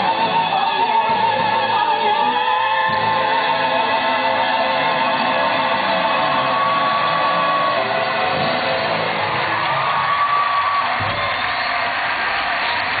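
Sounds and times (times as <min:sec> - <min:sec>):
backing music: 0:00.0 - 0:13.0.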